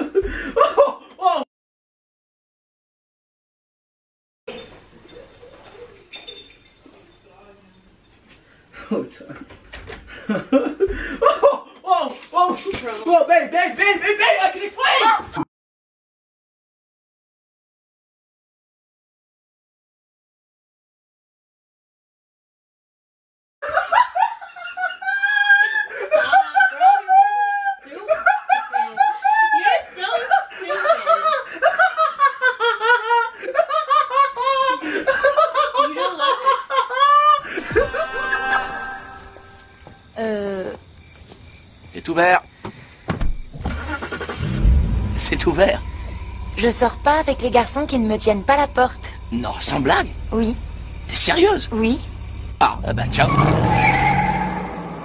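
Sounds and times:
woman laughing hard: 0.0s - 1.4s, 23.6s - 38.7s.

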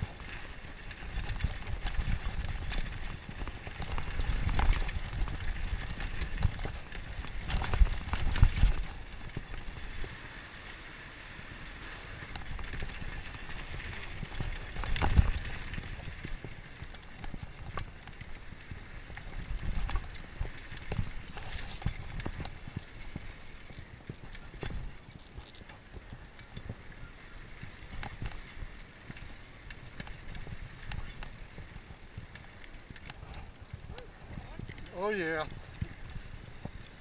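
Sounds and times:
bike rattling over bumps: 0.0s - 37.0s
bike tyres rumbling over dirt: 0.0s - 37.0s.

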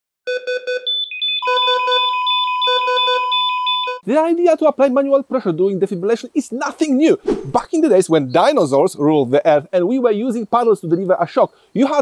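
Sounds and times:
electronic alarm beeping: 0.3s - 4.0s
steady high tone: 0.8s - 4.0s.

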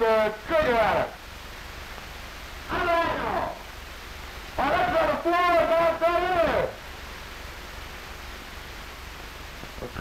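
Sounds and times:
old film soundtrack hiss: 0.0s - 10.0s.

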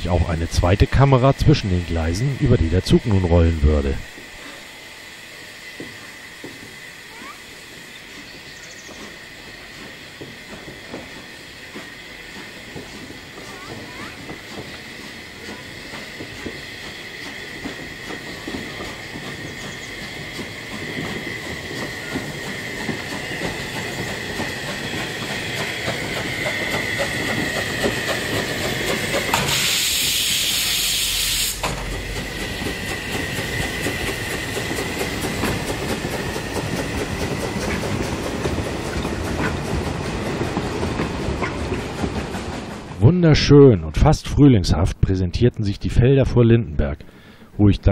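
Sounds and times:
loud hiss of steam: 0.0s - 42.8s
train wheels clicking over rail joints: 0.1s - 43.0s.

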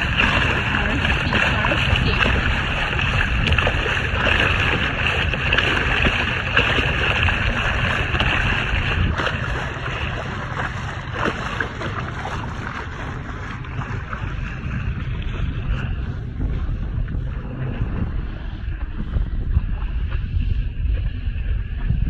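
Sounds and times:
water splashing along boat bow: 0.0s - 22.0s
wind buffeting microphone: 0.0s - 22.0s.

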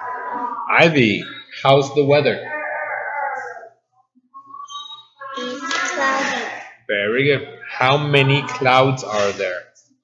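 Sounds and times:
person speaking a question: 0.7s - 2.5s, 5.4s - 9.6s
person humming: 7.1s - 9.5s.

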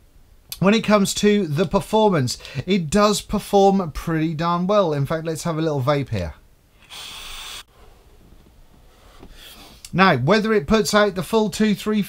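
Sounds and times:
breathy exhale hiss: 6.8s - 7.7s, 8.9s - 9.8s
vape draw air hissing: 6.8s - 7.7s.

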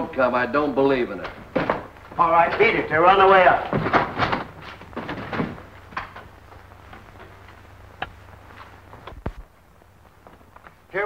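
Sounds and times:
footsteps: 1.0s - 11.0s
low soundtrack hum: 4.4s - 10.9s.

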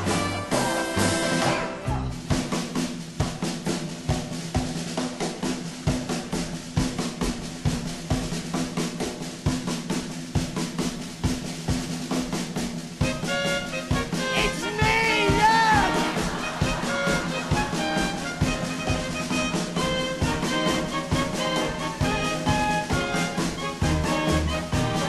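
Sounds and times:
band playing with horns: 0.0s - 2.6s, 13.0s - 25.0s
rapid snare drum strokes: 0.0s - 25.0s.

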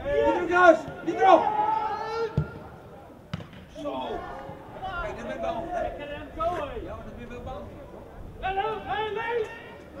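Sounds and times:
players shouting: 0.0s - 3.0s, 8.4s - 10.0s.

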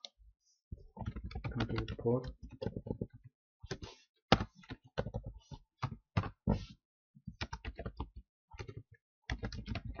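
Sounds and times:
typing on computer keyboard: 1.0s - 6.4s, 7.3s - 10.0s.

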